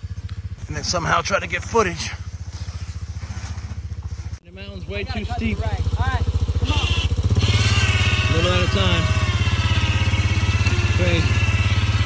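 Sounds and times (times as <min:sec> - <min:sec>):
atv engine running: 0:00.0 - 0:12.0.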